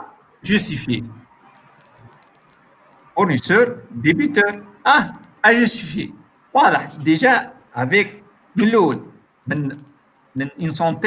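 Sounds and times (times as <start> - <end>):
man speaking: 0.4 - 1.3, 3.2 - 9.8, 10.4 - 11.0
faint sharp clicks: 1.5 - 3.2.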